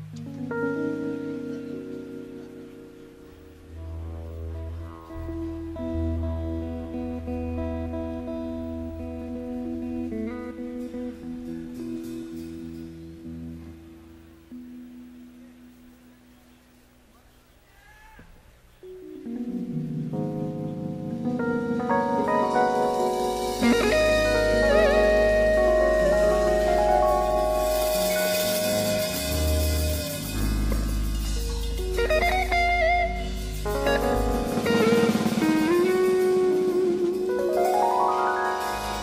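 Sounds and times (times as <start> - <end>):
electric guitar chords: 0.0 - 16.3, 18.8 - 39.0
deep sustained bass notes: 3.3 - 10.9, 22.9 - 37.6.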